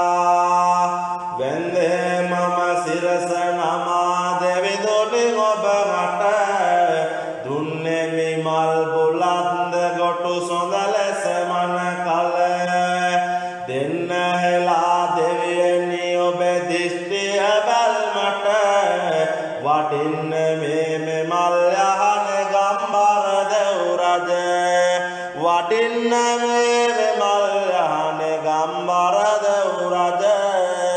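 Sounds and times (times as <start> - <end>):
person chanting devotional verses: 0.0 - 30.9.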